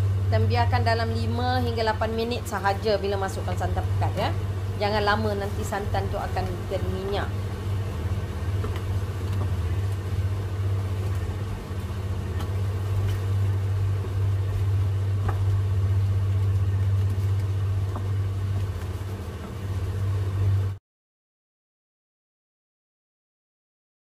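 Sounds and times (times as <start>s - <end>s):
low hum: 0.0s - 20.8s.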